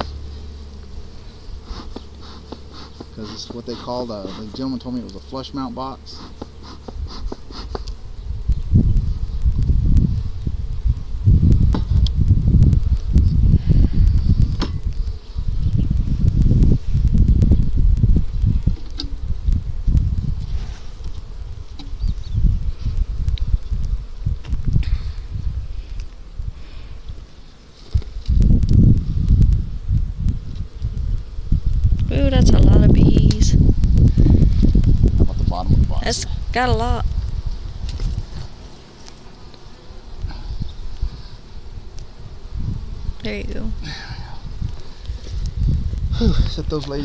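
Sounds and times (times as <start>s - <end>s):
honeybees buzzing: 0.0s - 47.0s
heavy low rumble: 8.2s - 20.7s, 28.3s - 37.8s.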